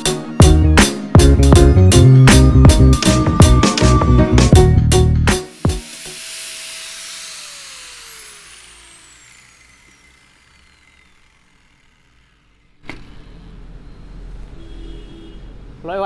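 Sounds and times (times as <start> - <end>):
angle grinder winding down: 5.3 - 13.4.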